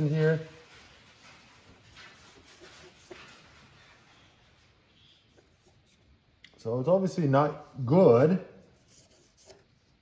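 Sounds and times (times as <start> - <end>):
cloth rag rubbing metal: 0.0 - 4.4.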